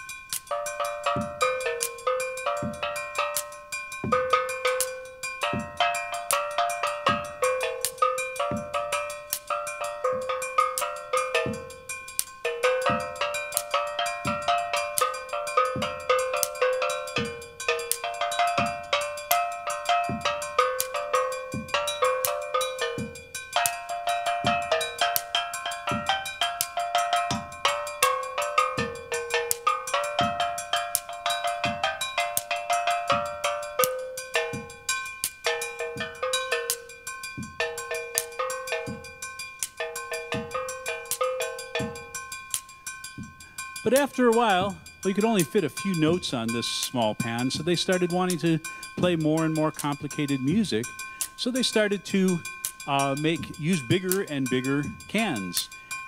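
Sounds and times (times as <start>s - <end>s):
drum kit bass-drum beat: 0.0s - 55.8s
steel pan ringing notes: 0.0s - 56.0s.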